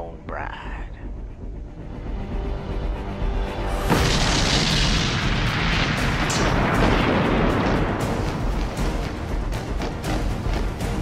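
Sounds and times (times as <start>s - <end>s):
low rumble: 0.0s - 10.8s
fireball explosion: 3.8s - 9.5s
sharp cracks: 3.9s - 10.7s.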